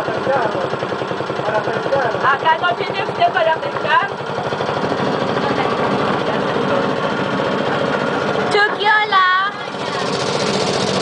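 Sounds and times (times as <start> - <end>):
boat engine chugging: 0.0 - 11.0.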